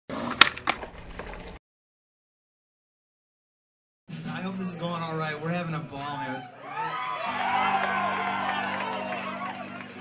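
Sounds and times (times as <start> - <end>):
skateboard rolling: 0.1 - 1.6.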